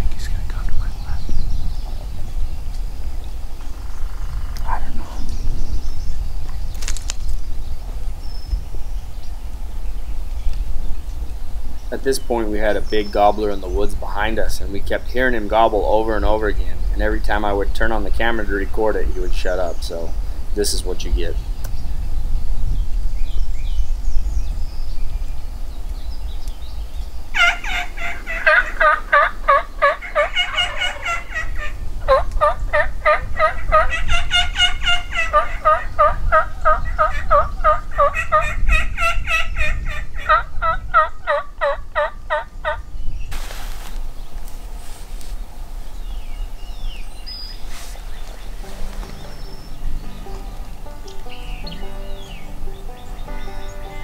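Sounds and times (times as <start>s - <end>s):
turkey gobbling: 27.4s - 42.8s
faint music: 47.9s - 54.0s.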